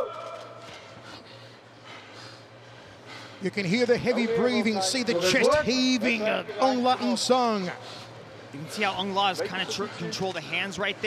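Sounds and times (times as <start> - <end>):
heavy laboured breathing: 0.7 - 3.5.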